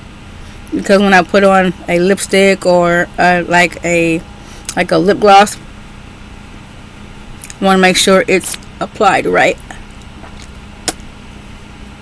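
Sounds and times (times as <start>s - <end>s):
faint constant tone: 0.0s - 12.0s
steady low hum: 0.0s - 12.0s
sharp click: 10.8s - 11.1s.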